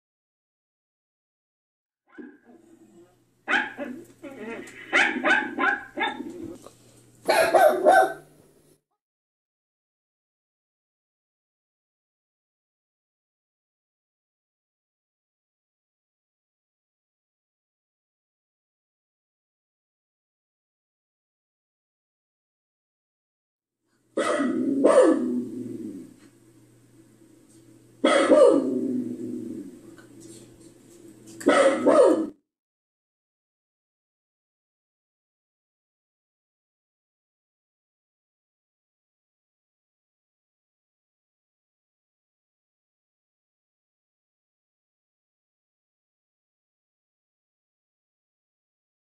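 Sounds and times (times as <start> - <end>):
dog barking: 3.5 - 4.0, 4.9 - 6.3, 7.3 - 8.3, 24.2 - 25.4, 28.0 - 28.7, 31.4 - 32.4.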